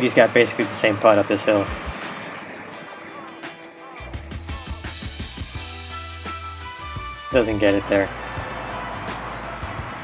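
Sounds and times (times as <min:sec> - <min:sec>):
background music: 0:00.0 - 0:10.0
bass line: 0:01.6 - 0:02.0, 0:04.0 - 0:10.0.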